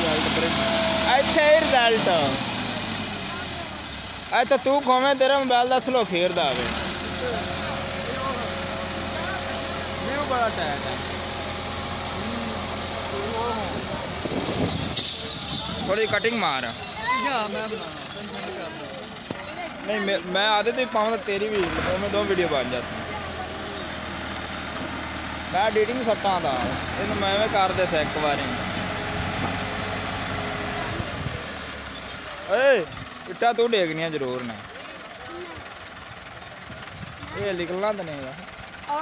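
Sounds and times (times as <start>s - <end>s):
men calling out: 0.0s - 29.0s, 30.8s - 39.0s
tractor diesel engine running: 0.0s - 39.0s.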